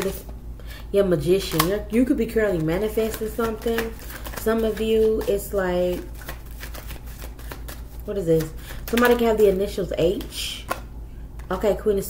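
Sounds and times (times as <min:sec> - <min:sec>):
cards being shuffled: 0:01.4 - 0:10.8.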